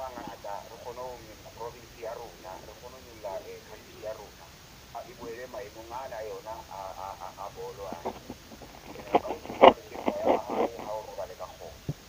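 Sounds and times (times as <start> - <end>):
person talking: 0.0 - 11.9.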